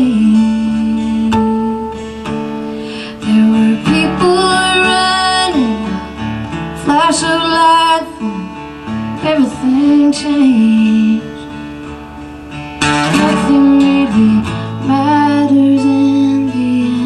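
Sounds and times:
woman singing wordless notes: 0:00.0 - 0:02.2, 0:03.2 - 0:06.2, 0:06.8 - 0:11.6, 0:13.0 - 0:17.0
acoustic guitar playing: 0:00.0 - 0:17.0.

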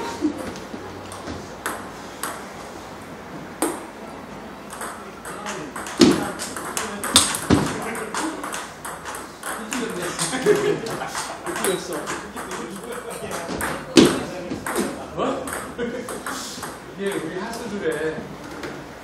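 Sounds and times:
ping-pong ball hitting paddles: 0:00.0 - 0:02.5, 0:03.5 - 0:04.0, 0:04.6 - 0:18.8
ping-pong ball bouncing on table: 0:00.4 - 0:02.5, 0:03.6 - 0:03.9, 0:04.7 - 0:18.2.

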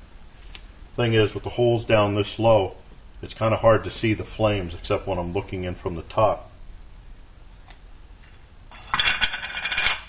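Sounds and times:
metal pot lid clattering: 0:08.8 - 0:10.0.

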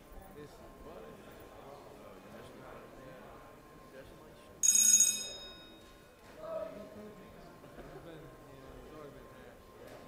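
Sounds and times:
murmur of people talking: 0:00.0 - 0:10.0
bright bell-like ring: 0:04.6 - 0:06.1.

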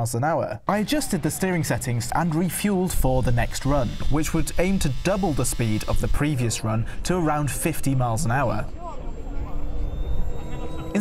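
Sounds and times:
faint high whine: 0:00.7 - 0:11.0.

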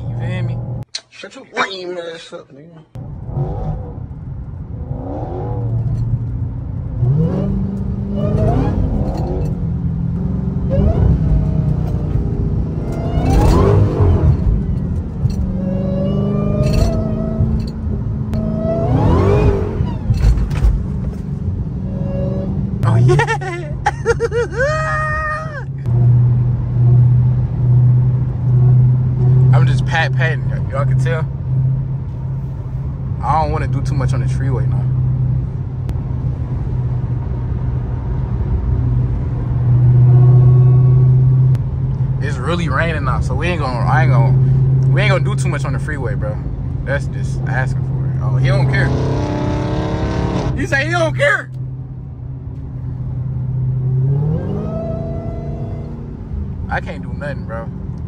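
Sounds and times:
car engine revving: 0:03.0 - 0:23.4, 0:25.8 - 0:58.0.

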